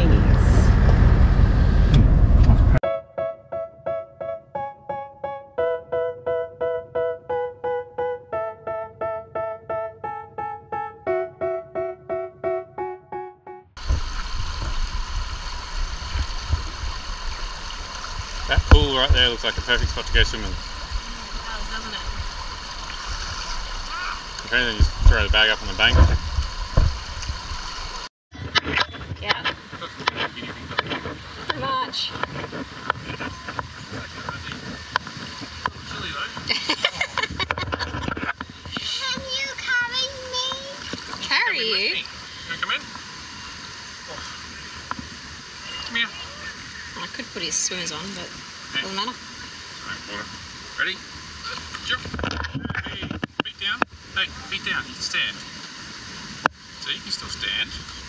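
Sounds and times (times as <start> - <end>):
water splashing as people wade: 13.8 - 58.0.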